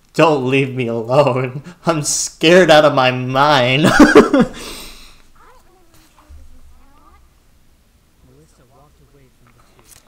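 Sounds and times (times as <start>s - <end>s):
high pitch-bending character voice: 5.4s - 7.3s.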